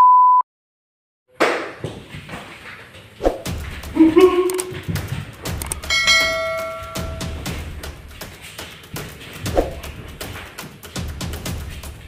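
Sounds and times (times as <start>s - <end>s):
bell-like chime: 5.9s - 7.4s.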